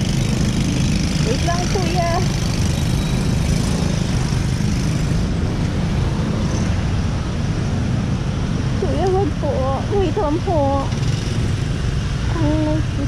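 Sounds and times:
scooter engine: 0:00.0 - 0:13.0
tyre noise on wet road: 0:00.0 - 0:13.0
wind rumble on microphone: 0:00.0 - 0:13.0.

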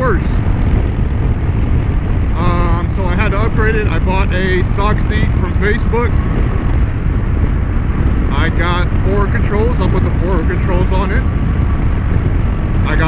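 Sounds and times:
man talking: 0:00.0 - 0:00.4, 0:02.3 - 0:06.1, 0:08.3 - 0:11.2
motorcycle engine rumble: 0:00.0 - 0:13.0
wind rush on microphone: 0:00.0 - 0:13.0.

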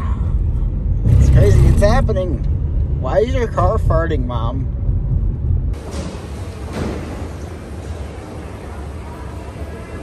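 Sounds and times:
road rumble inside car: 0:00.0 - 0:05.9
busy airport terminal hubbub: 0:05.8 - 0:10.0.

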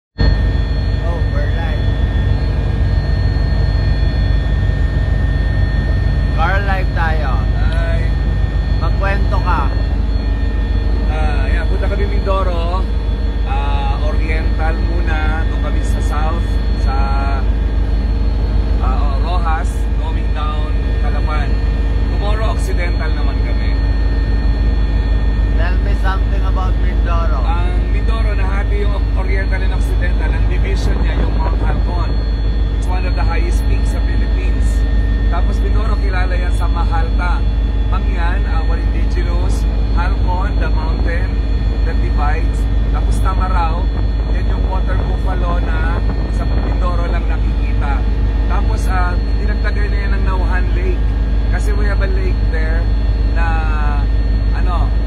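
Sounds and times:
helicopter engine drone: 0:00.1 - 0:55.0
whining tones: 0:00.1 - 0:55.0.

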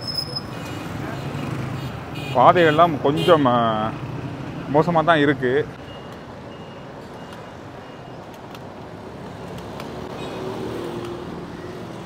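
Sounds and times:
traffic engines hum: 0:00.0 - 0:12.0.

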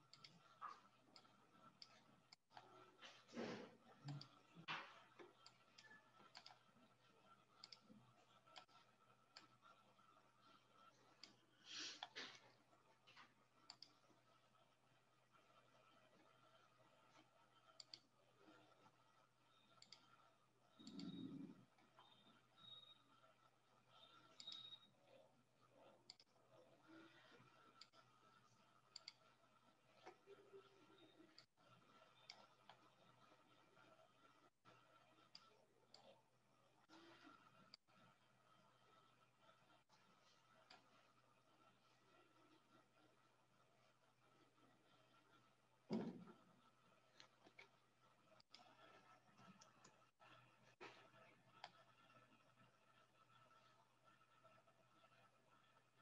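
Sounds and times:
computer mouse clicks: 0:00.0 - 0:03.0, 0:03.7 - 0:12.6, 0:13.6 - 0:14.2, 0:15.3 - 0:18.9, 0:19.5 - 0:23.3, 0:23.9 - 0:36.2, 0:39.7 - 0:42.9, 0:46.2 - 0:55.3.

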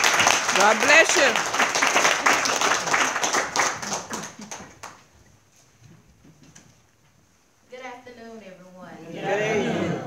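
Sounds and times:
crowd applauding: 0:00.0 - 0:05.1.

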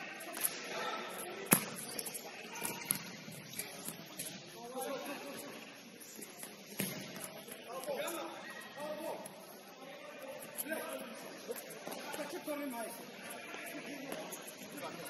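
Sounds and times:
sharp ball kick: 0:06.8 - 0:07.2.

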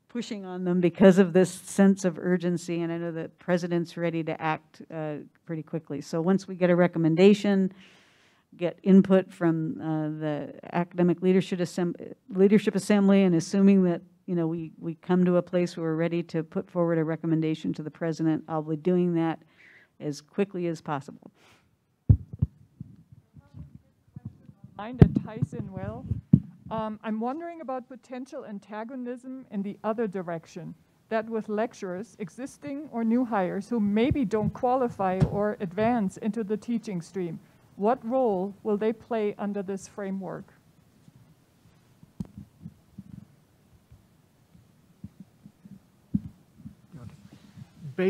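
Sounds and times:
faint microphone bumps: 0:22.1 - 0:27.0, 0:34.0 - 0:36.0, 0:42.0 - 0:48.0
microphone handling thumps: 0:22.1 - 0:27.0, 0:34.0 - 0:36.0, 0:42.0 - 0:48.0.

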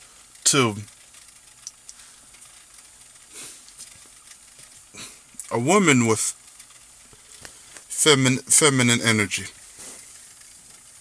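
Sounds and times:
faint recording hiss: 0:00.0 - 0:11.0
tiny clicks: 0:01.1 - 0:04.7.

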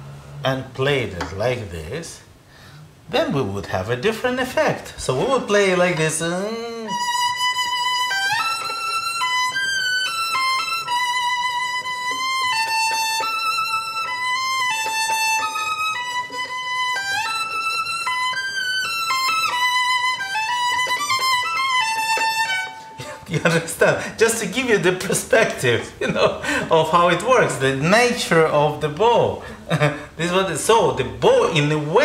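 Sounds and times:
solo violin slow melody: 0:06.7 - 0:23.0.

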